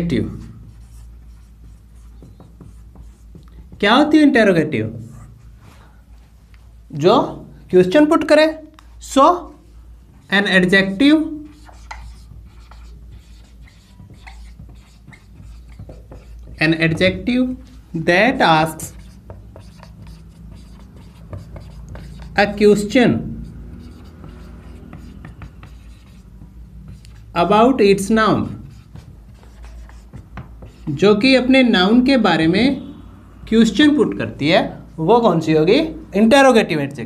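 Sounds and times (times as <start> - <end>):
marker writing on whiteboard: 0.0 - 6.3, 7.8 - 34.3.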